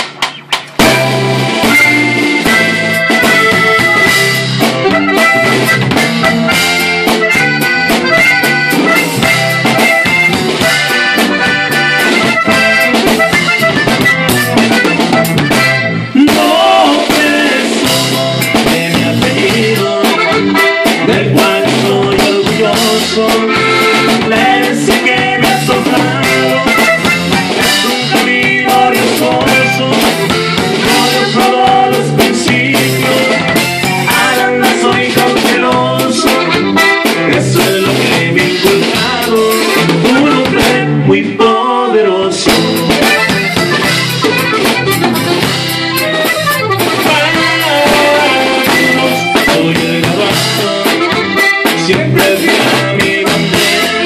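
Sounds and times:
button accordion melody: 0.0 - 54.0
strummed bajo sexto: 0.0 - 54.0.

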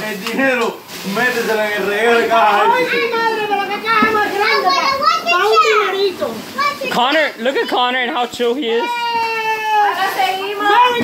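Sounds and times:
excited voices exclaiming: 2.2 - 7.8, 8.6 - 11.0.

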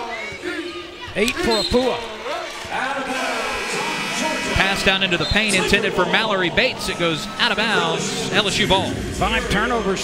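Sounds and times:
man talking: 2.7 - 10.0.

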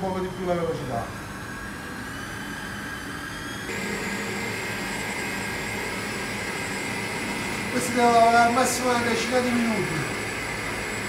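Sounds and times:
stand mixer motor whining: 0.0 - 11.0.

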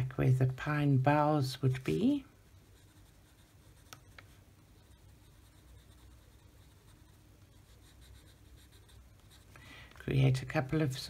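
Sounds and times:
colored pencil scratching on paper: 1.7 - 9.6.

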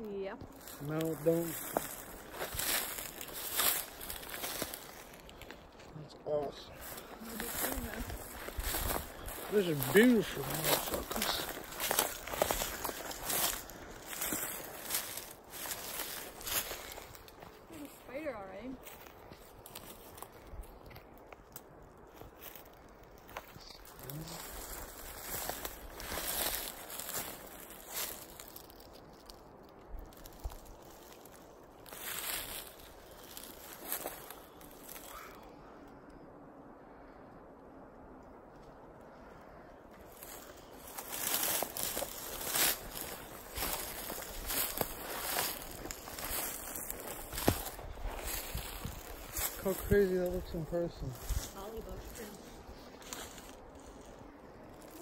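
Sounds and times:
brush rustling: 0.0 - 35.6, 40.0 - 55.0
footsteps crunching through leaves: 0.1 - 35.4, 39.9 - 55.0.

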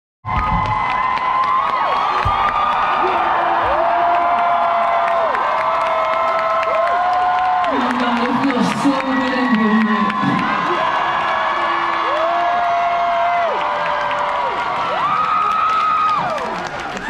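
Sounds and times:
audience cheering and screaming: 0.3 - 17.0.

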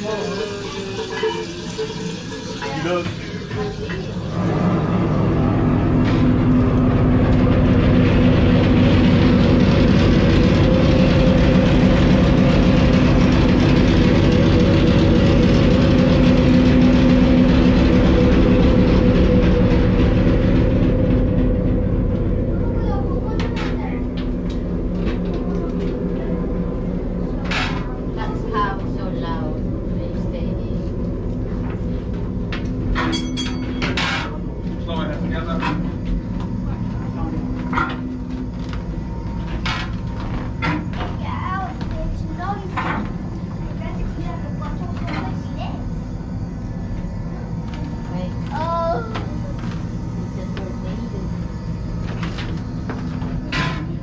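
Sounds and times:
diesel engine drone: 0.0 - 54.0.

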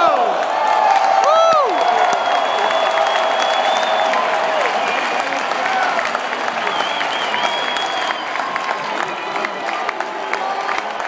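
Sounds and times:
crowd cheering shouts: 0.0 - 11.0
crowd clapping: 0.0 - 11.0.

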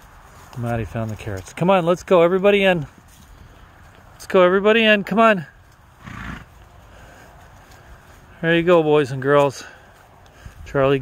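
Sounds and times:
horse snorting: 6.0 - 6.6.

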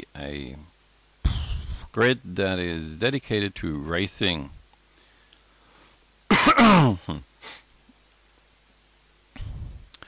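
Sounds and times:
man clearing his throat: 6.3 - 7.2.

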